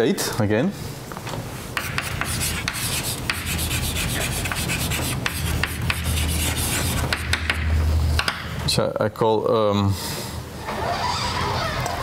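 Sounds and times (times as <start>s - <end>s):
chalk scratching on blackboard: 1.8s - 7.6s
chalk tapping on board: 1.8s - 8.4s.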